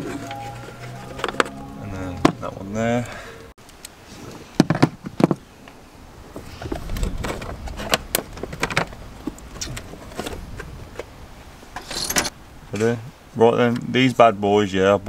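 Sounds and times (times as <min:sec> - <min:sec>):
low rumble: 0:00.0 - 0:03.5.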